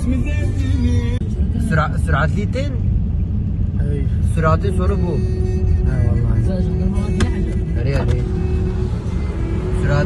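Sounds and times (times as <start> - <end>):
vehicle rumble on road: 0.0 - 10.0.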